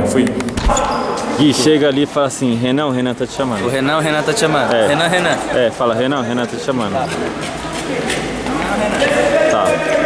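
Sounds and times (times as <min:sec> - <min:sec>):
indistinct voices: 0:03.1 - 0:10.0.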